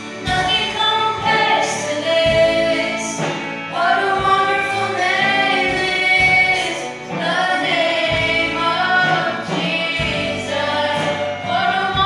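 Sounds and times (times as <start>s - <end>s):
acoustic guitar: 0.0s - 12.0s
group of women singing in harmony: 0.2s - 12.0s.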